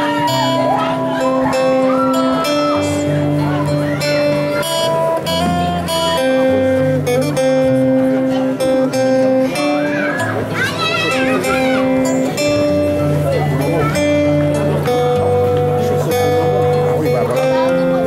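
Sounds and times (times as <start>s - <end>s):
held keyboard chords: 0.0s - 18.0s
strummed acoustic guitar: 0.0s - 18.0s.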